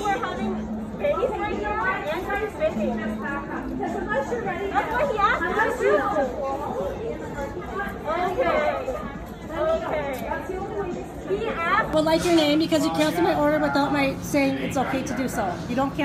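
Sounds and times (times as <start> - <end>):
women arguing: 0.0 - 16.0.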